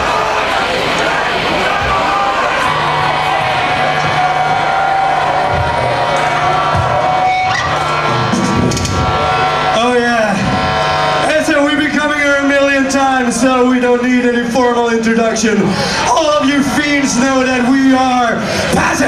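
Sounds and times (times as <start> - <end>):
distorted guitars and bass: 0.0 - 19.0
man's harsh voice over speakers: 9.6 - 19.0.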